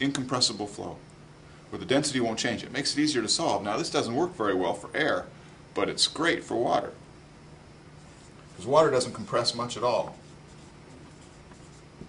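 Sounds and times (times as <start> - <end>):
marker writing on whiteboard: 10.0 - 12.0.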